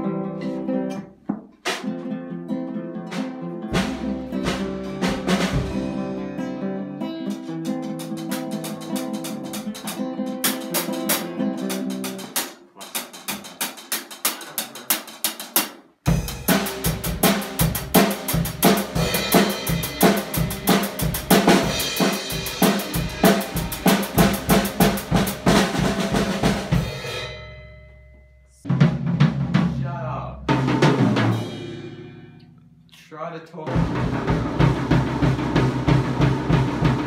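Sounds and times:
classical guitar fingerpicking: 0:00.0 - 0:13.5
drum kit playing: 0:00.9 - 0:02.2, 0:03.0 - 0:27.8, 0:28.6 - 0:37.0
loud drum kit hits ringing: 0:03.8 - 0:06.2, 0:16.1 - 0:29.9, 0:30.5 - 0:32.4, 0:33.7 - 0:37.0.

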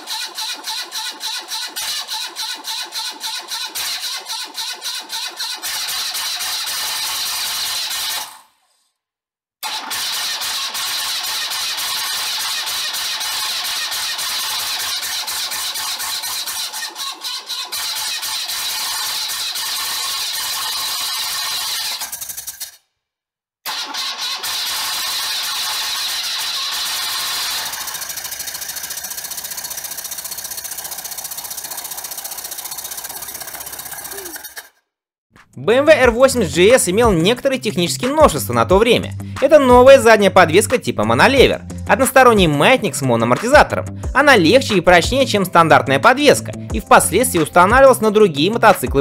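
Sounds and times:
valve ticking clatter: 0:24.8 - 0:34.7
motorcycle engine running: 0:25.4 - 0:34.5.

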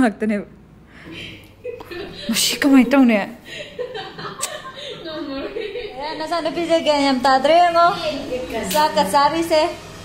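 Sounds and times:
person chuckling and talking: 0:01.4 - 0:02.8.

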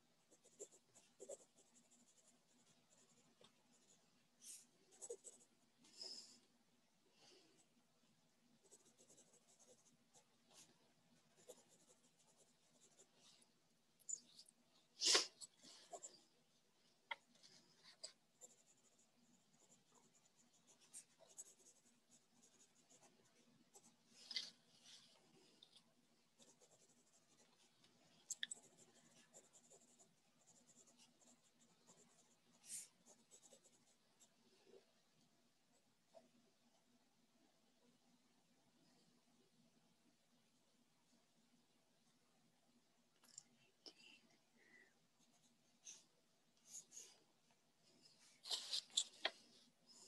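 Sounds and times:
pencil scratching on paper: 0:00.3 - 0:05.5, 0:08.6 - 0:13.2, 0:17.5 - 0:24.1, 0:26.4 - 0:27.7, 0:28.5 - 0:34.4
pen scratching on paper: 0:28.5 - 0:34.0
soft hiss: 0:30.0 - 0:50.0.

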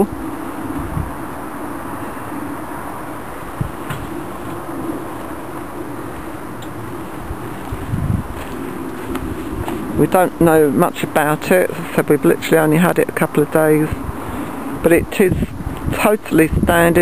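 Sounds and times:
low buzzing drone: 0:00.0 - 0:17.0.

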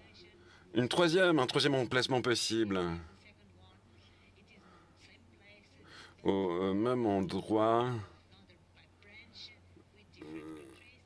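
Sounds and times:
faint low speech: 0:02.8 - 0:11.0.

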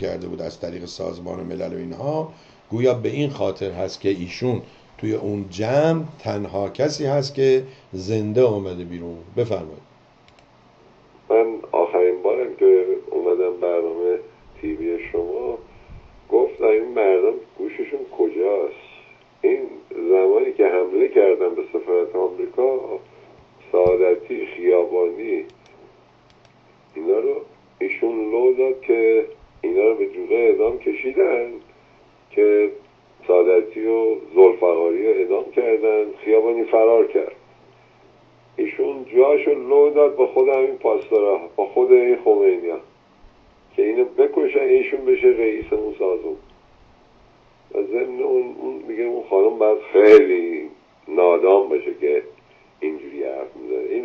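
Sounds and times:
person speaking over telephone: 0:11.3 - 0:15.6, 0:16.3 - 0:23.0, 0:23.6 - 0:25.5, 0:27.0 - 0:31.6, 0:32.4 - 0:37.4, 0:38.6 - 0:42.9, 0:43.8 - 0:46.4, 0:47.7 - 0:54.0.

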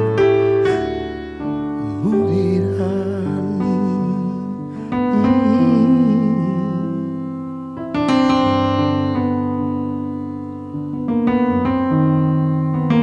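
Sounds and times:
solo piano: 0:00.0 - 0:13.0.

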